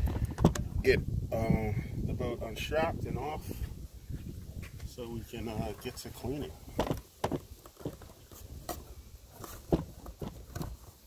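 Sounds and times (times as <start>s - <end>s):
clicks and knocks on plastic hull: 0.0s - 0.7s, 6.7s - 10.9s.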